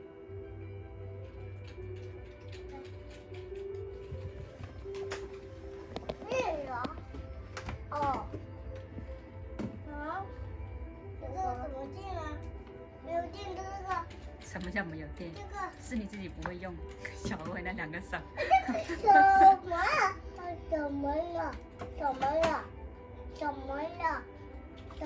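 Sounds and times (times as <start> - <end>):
soft background music: 0.0 - 25.0.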